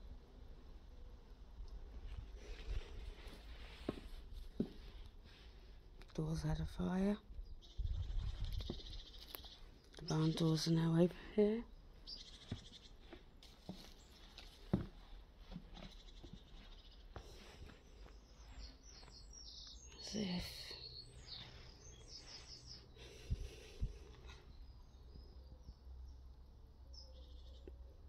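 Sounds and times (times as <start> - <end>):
small birds chirping: 0.0 - 28.0
footsteps crunching on rubble: 12.0 - 19.2.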